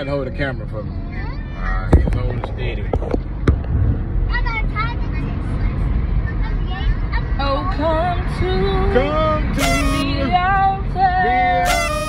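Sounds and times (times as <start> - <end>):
car cabin rumble: 1.7 - 5.1.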